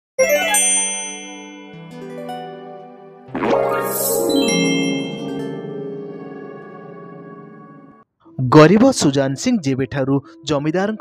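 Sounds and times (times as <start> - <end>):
ringing chord chime: 0.2 - 8.0
tinkling sparkle: 3.6 - 5.7.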